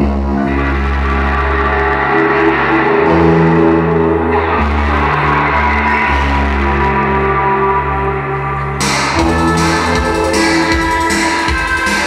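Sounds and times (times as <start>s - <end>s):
droning synthesizer chords: 0.0s - 12.0s
low bass notes: 0.0s - 12.0s.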